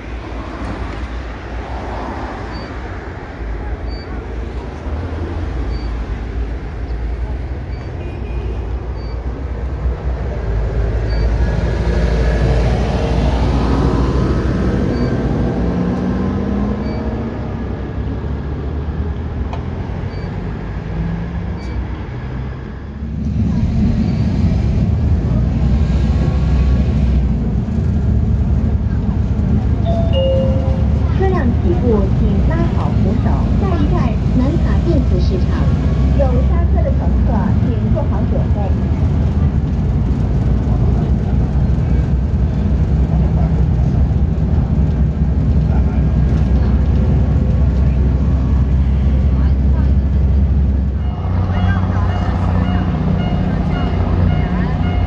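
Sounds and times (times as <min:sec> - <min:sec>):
engine and road rumble: 0:00.0 - 0:55.0
street traffic: 0:00.0 - 0:55.0
bus engine running: 0:08.7 - 0:55.0.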